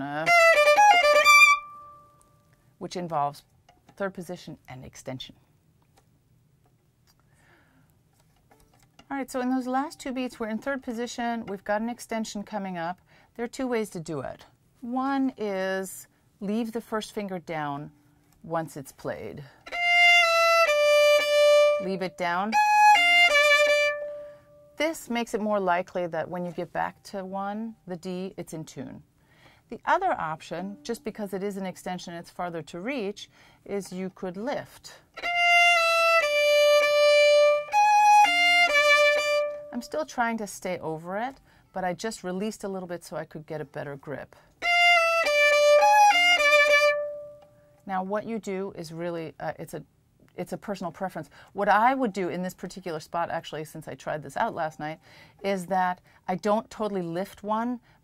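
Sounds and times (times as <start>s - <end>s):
solo violin bowed notes: 0.2s - 2.1s, 19.6s - 24.8s, 35.2s - 39.9s, 44.6s - 47.5s.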